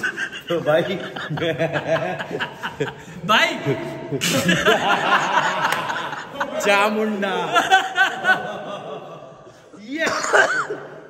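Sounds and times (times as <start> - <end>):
people talking: 0.0 - 2.4, 3.2 - 9.0, 9.8 - 10.7
chuckling laughter: 0.0 - 6.6, 7.4 - 10.8.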